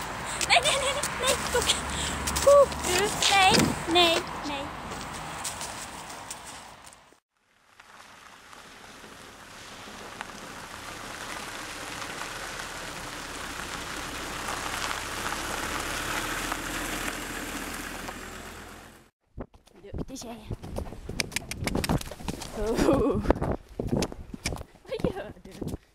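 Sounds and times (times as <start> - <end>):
tyres crunching on gravel: 0.0 - 19.1
vehicle engine noise: 0.0 - 19.1.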